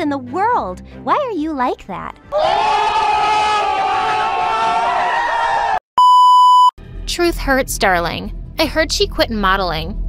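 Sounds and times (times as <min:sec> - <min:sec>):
crowd shouting and screaming: 0:02.3 - 0:05.8
censor bleep: 0:06.0 - 0:06.8.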